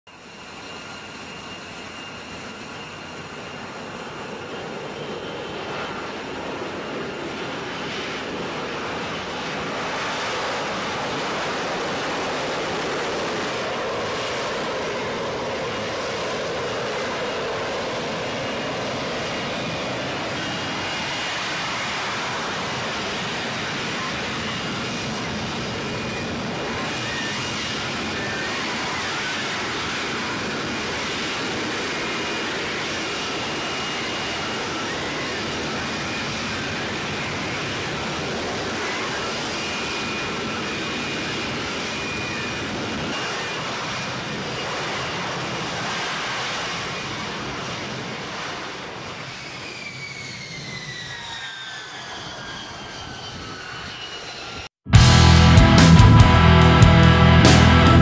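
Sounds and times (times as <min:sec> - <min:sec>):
jet engine hovering roar: 0:00.1 - 0:58.0.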